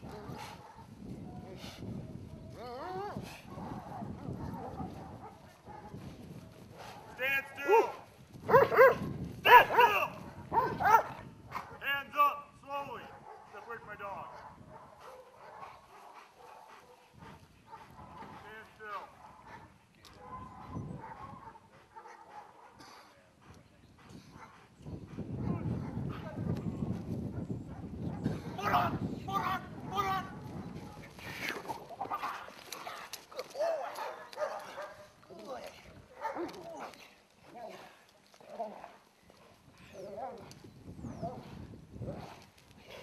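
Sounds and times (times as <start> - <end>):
dog barking: 0.2 - 0.9, 3.5 - 6.0, 6.8 - 11.8, 13.1 - 13.6, 14.3 - 17.1, 18.9 - 23.0, 32.2 - 35.1, 36.1 - 36.9.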